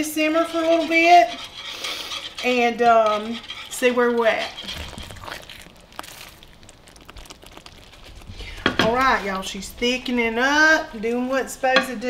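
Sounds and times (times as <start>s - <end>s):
gravy simmering in a skillet: 0.0s - 12.0s
spatula scraping skillet: 0.0s - 12.0s.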